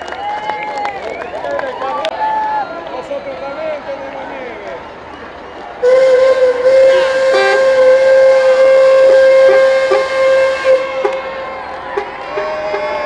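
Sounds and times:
air horn blast: 5.8s - 12.5s.

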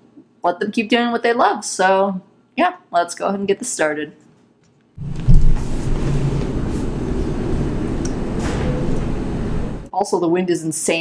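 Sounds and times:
strong wind rumbling: 5.0s - 9.9s.

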